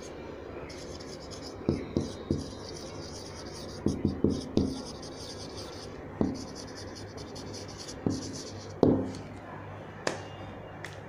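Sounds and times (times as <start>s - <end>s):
marker pen writing on whiteboard: 0.7s - 9.2s.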